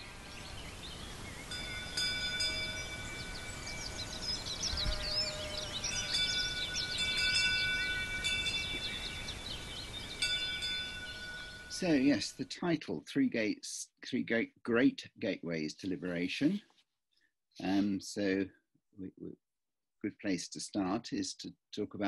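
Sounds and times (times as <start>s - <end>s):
birdsong: 0.0s - 12.3s
chime ringing: 1.5s - 4.3s, 5.4s - 9.0s, 10.2s - 12.2s.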